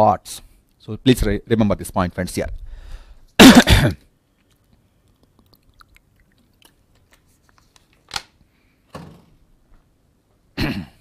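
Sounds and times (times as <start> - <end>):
man coughing: 3.4 - 4.1, 10.6 - 11.0.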